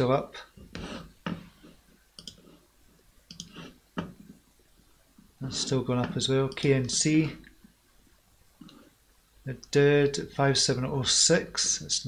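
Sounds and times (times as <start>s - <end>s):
computer mouse clicks: 2.2s - 2.5s, 3.3s - 4.1s.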